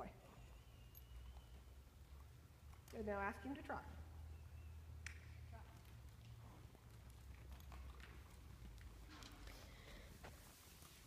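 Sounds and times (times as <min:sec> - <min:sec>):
horse hoofbeats on soft dirt: 0:05.6 - 0:11.0.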